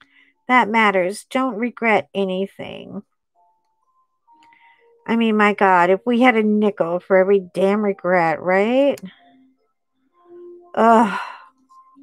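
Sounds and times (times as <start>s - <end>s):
woman sighing: 10.8s - 11.5s.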